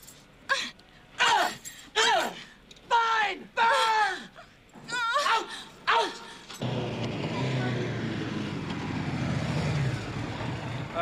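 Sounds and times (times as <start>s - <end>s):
motorcycle engine running: 6.6s - 11.0s.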